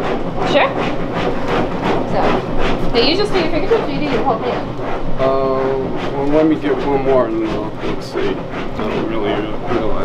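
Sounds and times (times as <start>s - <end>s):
kitchen equipment droning: 0.0s - 10.0s
person speaking: 1.8s - 10.0s.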